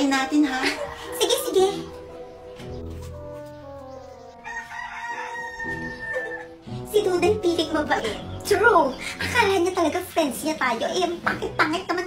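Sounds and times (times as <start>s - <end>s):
rooster crowing: 4.4s - 6.6s.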